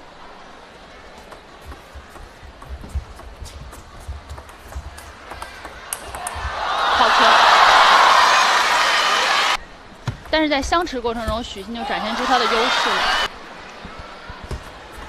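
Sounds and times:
table tennis ball clicking: 1.2 - 6.6
crowd cheering and applause: 5.0 - 9.6, 11.8 - 13.3.

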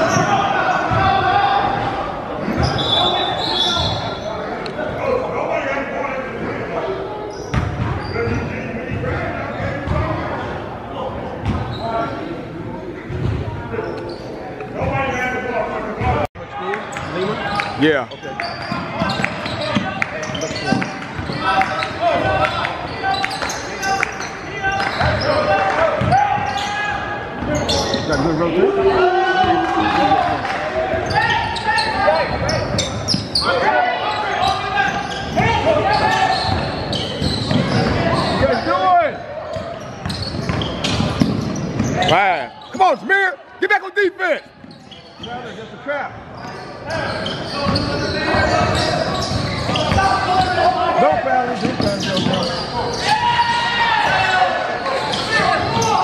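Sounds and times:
sneakers squeaking: 0.0 - 4.9, 6.9 - 10.6, 11.2 - 12.4, 13.0 - 56.0
voices echoing: 0.0 - 56.0.

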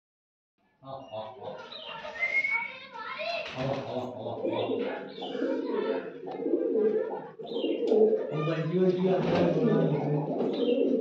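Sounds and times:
pigeons cooing: 3.5 - 11.0.

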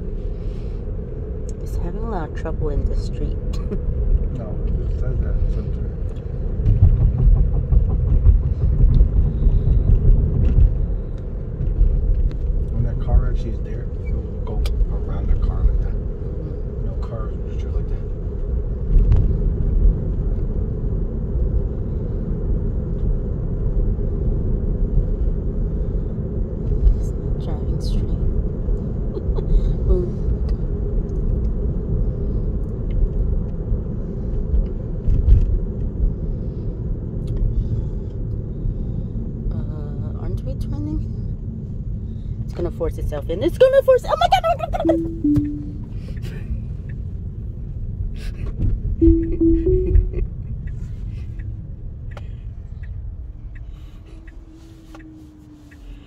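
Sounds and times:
road and tyre rumble: 0.0 - 56.0.

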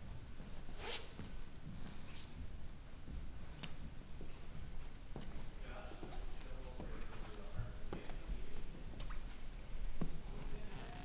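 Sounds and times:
footsteps on wooden floor: 0.0 - 11.0
scratchy rustle: 0.6 - 2.4.

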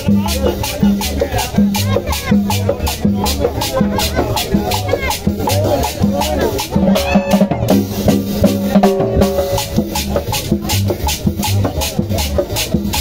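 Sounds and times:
drums and hand percussion: 0.0 - 13.0
live cumbia band playing: 0.0 - 13.0.

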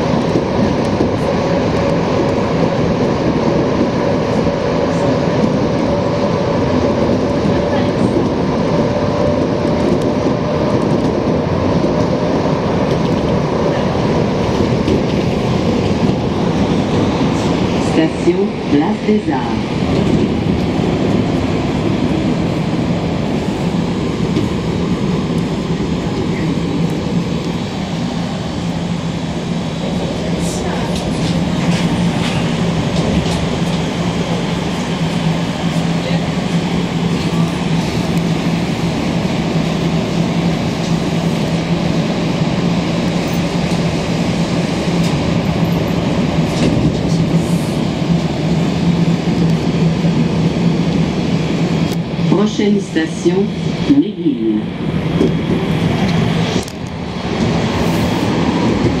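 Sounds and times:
subway train running hum: 0.0 - 59.0.

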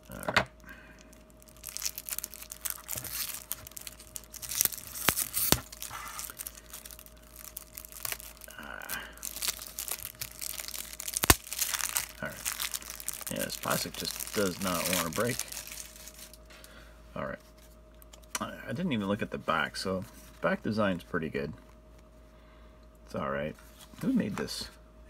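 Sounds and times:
plastic wrap crinkling and tearing: 1.1 - 16.4.

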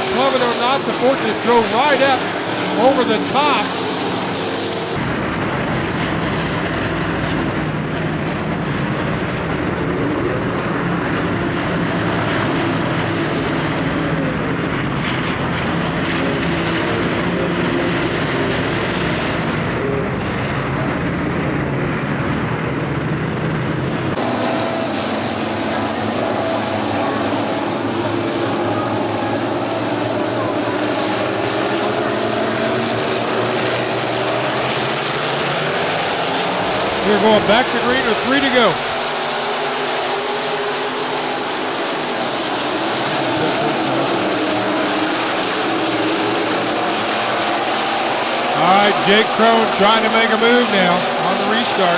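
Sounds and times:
race car engines at part throttle: 0.0 - 51.9.

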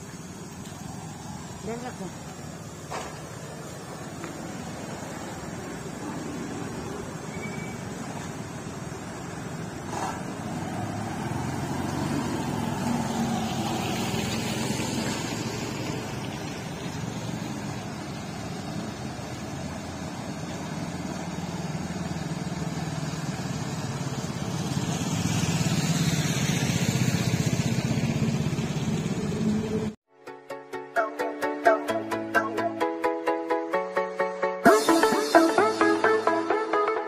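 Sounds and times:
vehicle engine running: 0.0 - 30.0.

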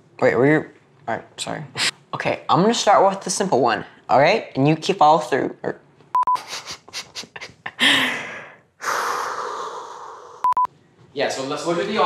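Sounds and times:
boy laughing breathily: 6.4 - 8.6.

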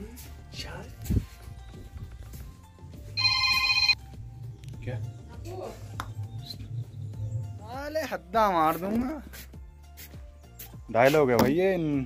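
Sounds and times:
electronic ringtone tone: 3.2 - 4.0.

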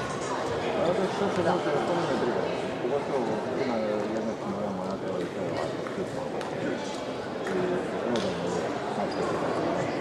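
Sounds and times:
people talking in a hall: 0.0 - 10.0.

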